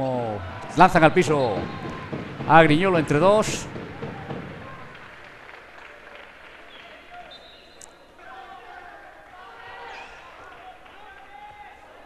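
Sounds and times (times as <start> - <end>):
distant voices of players: 0.0 - 12.0
ball bouncing on hard floor: 1.6 - 5.0.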